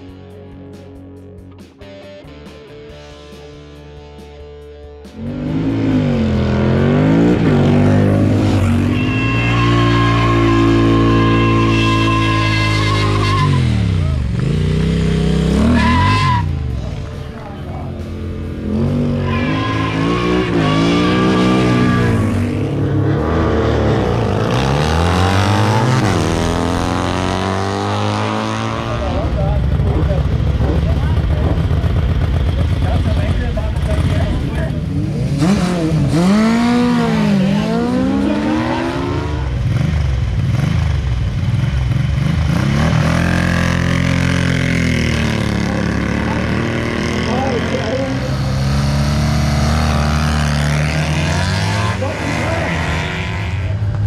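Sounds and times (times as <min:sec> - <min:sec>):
motorcycle engines revving: 0:00.0 - 0:54.0.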